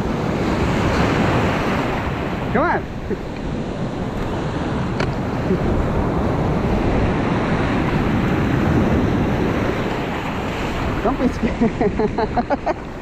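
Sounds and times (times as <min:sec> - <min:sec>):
ocean surf over sand: 0:00.0 - 0:13.0
wind buffeting microphone: 0:00.0 - 0:13.0.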